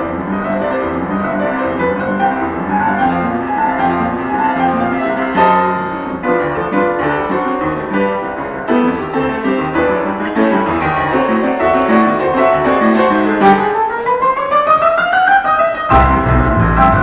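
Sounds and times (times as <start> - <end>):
grand piano playing: 0.0 - 17.0.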